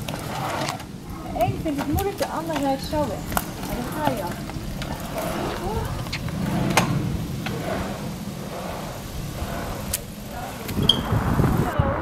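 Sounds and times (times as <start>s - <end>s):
bike rolling over brick paving: 0.0s - 12.0s
faint voices: 0.3s - 12.0s.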